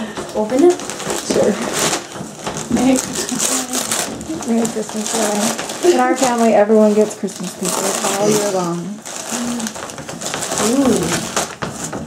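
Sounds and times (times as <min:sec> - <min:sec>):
wrapping paper rustling: 0:00.0 - 0:12.0.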